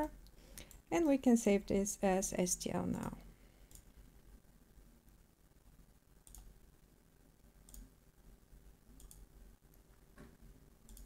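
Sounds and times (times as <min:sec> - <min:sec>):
computer mouse clicks: 0:00.2 - 0:01.1, 0:03.7 - 0:03.9, 0:06.2 - 0:06.5, 0:07.6 - 0:07.9, 0:08.9 - 0:09.8.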